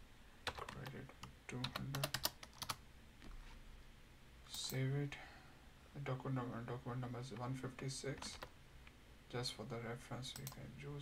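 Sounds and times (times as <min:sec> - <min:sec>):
computer keyboard keystrokes: 0:00.5 - 0:02.8, 0:08.2 - 0:08.5, 0:10.3 - 0:10.6.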